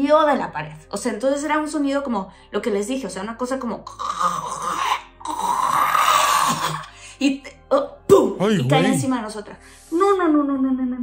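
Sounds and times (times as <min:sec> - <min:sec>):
woman imitating guttural groan: 0:03.9 - 0:06.9.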